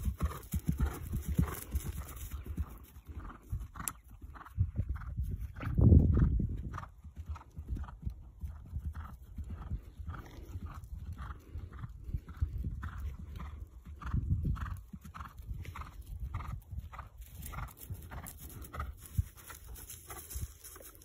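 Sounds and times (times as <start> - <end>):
hoofbeats on grass: 0.0 - 21.0.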